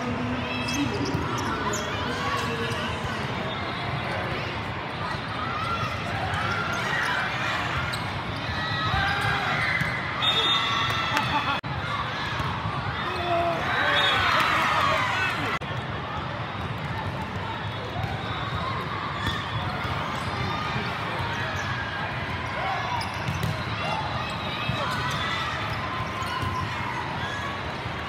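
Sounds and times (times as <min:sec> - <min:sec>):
babble of many voices: 0:00.0 - 0:09.5, 0:11.0 - 0:28.0.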